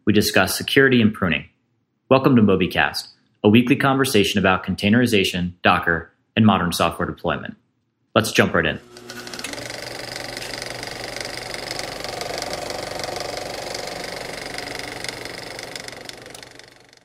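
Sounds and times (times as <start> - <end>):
rapid mechanical rattle: 8.8 - 17.0.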